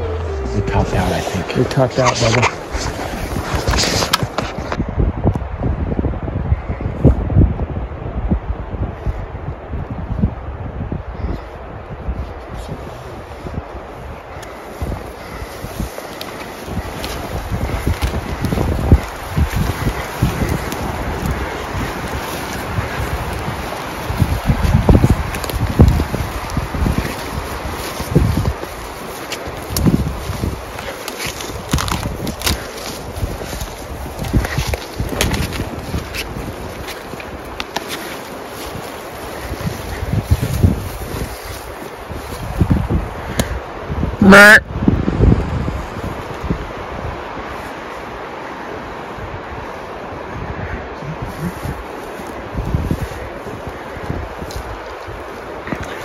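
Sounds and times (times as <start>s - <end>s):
clothing rustle: 0.0s - 4.8s, 14.5s - 42.9s
footsteps through dry grass: 0.0s - 4.9s, 12.1s - 44.1s, 45.0s - 56.0s
wind on microphone: 0.0s - 56.0s.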